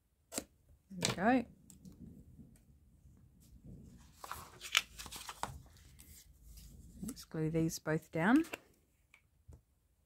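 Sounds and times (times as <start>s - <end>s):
paper rustling and scraping: 3.8s - 7.2s
card crackling: 4.1s - 6.2s.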